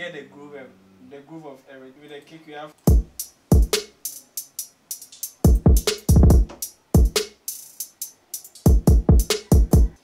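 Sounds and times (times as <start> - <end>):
hi-hats with quick rolls: 2.8 - 10.0
deep kick drum hits: 2.9 - 3.7, 5.5 - 7.2.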